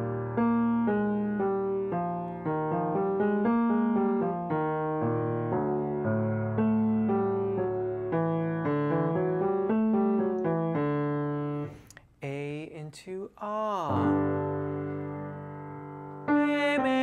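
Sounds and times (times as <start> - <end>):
piano playing notes: 0.0 - 11.9, 13.9 - 17.0.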